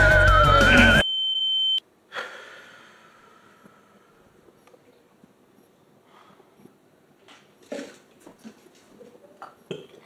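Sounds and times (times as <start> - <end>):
person throaty vocal sounds: 0.4 - 1.0
person breathing: 2.1 - 4.5, 6.0 - 6.6.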